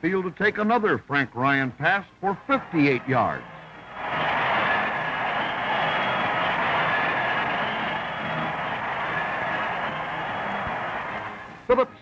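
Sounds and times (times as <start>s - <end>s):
stadium crowd cheering: 2.2s - 11.6s.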